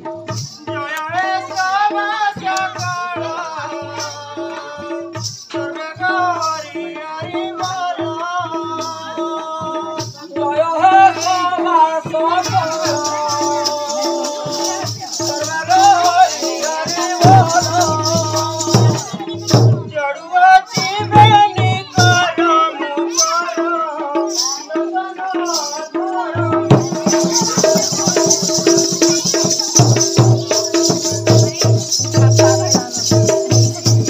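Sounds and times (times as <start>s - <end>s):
barrel drum beat: 0.0s - 34.0s
rattling percussion: 0.0s - 34.0s.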